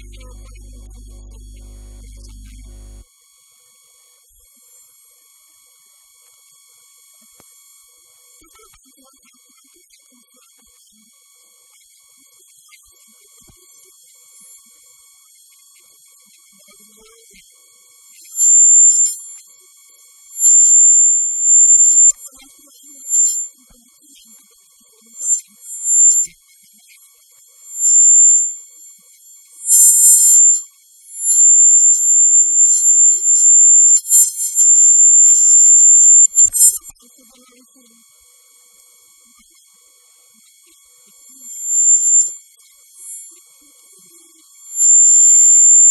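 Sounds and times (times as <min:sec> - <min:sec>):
high-pitched electronic whine: 0:00.0 - 0:03.0, 0:18.4 - 0:19.3, 0:20.4 - 0:22.3, 0:23.1 - 0:23.5, 0:25.2 - 0:26.4, 0:27.7 - 0:28.7, 0:29.6 - 0:36.9, 0:41.5 - 0:42.4, 0:43.0 - 0:43.4, 0:44.7 - 0:45.9.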